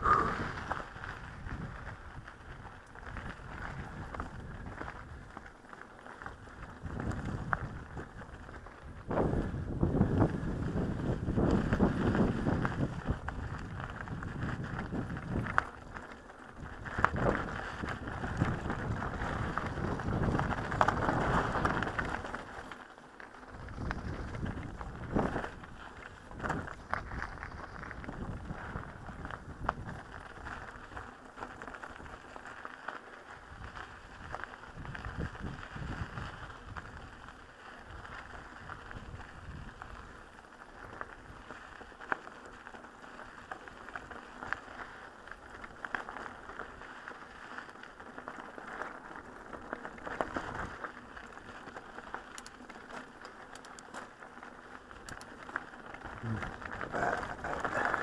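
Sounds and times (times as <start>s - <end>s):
tyres crunching over gravel: 0.0s - 58.0s
bike rattles and knocks: 2.9s - 32.9s, 40.8s - 58.0s.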